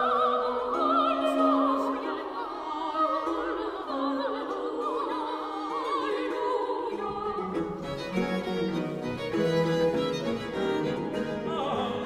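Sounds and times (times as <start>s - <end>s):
baroque choral music with viols: 0.0s - 12.0s.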